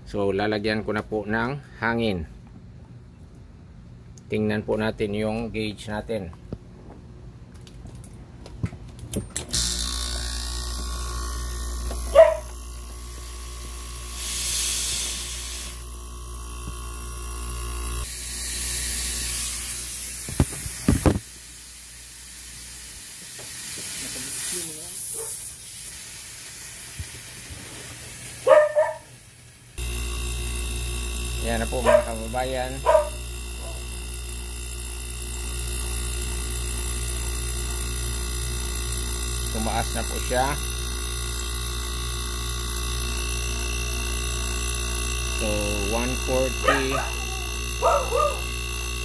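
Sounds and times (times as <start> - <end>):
compressor humming and hissing: 0.0 - 49.0
dog barking: 12.1 - 12.5, 25.1 - 25.4, 28.4 - 29.1, 31.8 - 32.2, 32.8 - 33.9, 46.6 - 48.5.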